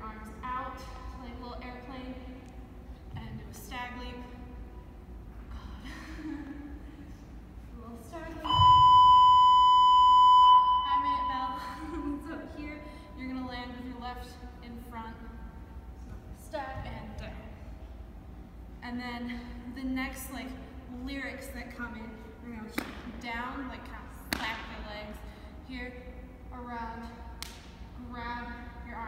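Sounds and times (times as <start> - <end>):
woman talking: 7.7 - 8.6, 10.8 - 15.4, 16.4 - 17.6, 28.0 - 29.0
high electronic beep: 8.5 - 11.6
sharp slap: 22.8 - 23.2, 27.4 - 27.8.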